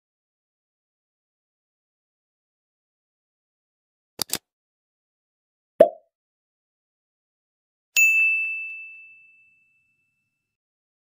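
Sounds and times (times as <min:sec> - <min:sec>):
notification bell ding: 0:08.0 - 0:10.2.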